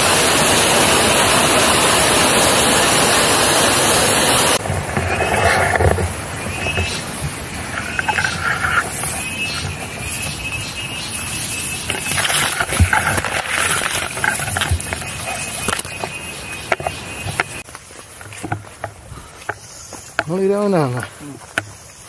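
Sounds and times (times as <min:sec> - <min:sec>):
grass and leaves rustling: 0:04.6 - 0:22.0
stems crackling and snapping: 0:11.8 - 0:19.5.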